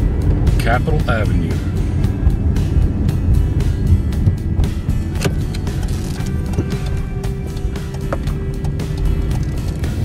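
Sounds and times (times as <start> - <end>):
car engine and tyres rumbling: 0.0 - 10.0
music playing: 0.0 - 10.0.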